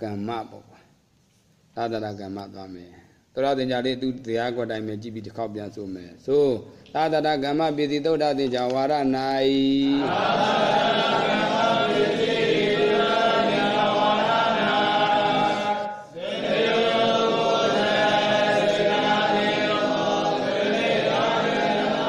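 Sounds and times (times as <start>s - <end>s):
voices chanting in unison: 10.0s - 22.0s.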